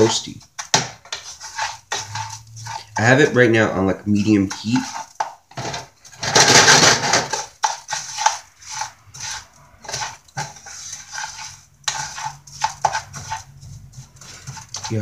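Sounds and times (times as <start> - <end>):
wooden spoon scraping rice in pan: 0.0 - 15.0.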